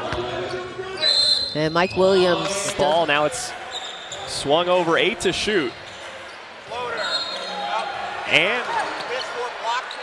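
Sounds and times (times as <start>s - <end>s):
basketball court noise: 0.0s - 4.4s
voices in a gym: 0.0s - 10.0s.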